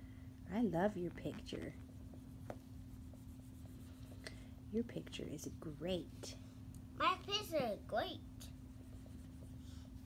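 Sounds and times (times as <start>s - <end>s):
marker scratching on whiteboard: 1.2s - 4.2s, 8.6s - 9.8s.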